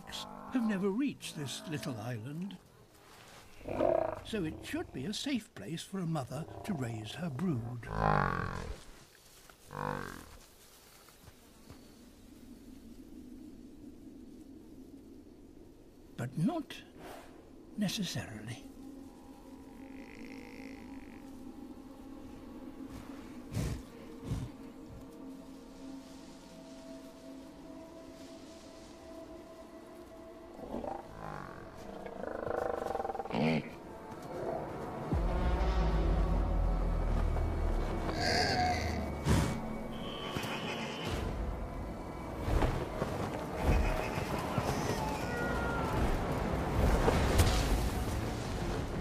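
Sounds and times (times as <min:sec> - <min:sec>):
faint low drone: 0:17.3 - 0:40.3
low moo-like dinosaur calls: 0:19.5 - 0:21.4, 0:30.6 - 0:41.1.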